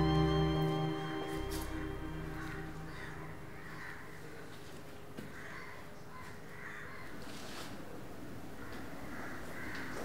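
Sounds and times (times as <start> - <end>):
crows cawing: 2.4 - 7.2, 8.6 - 10.0.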